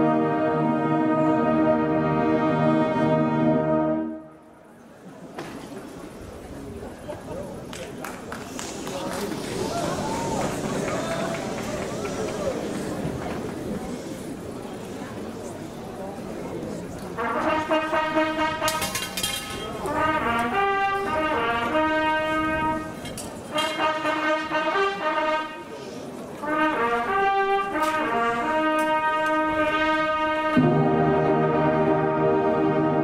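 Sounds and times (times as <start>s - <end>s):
brass band playing held chords: 0.0s - 4.5s, 8.8s - 13.2s, 17.2s - 25.8s, 26.4s - 33.0s.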